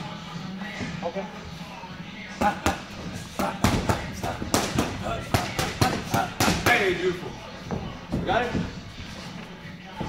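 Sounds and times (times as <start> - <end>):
boxing gloves smacking focus mitts: 2.4 - 6.9.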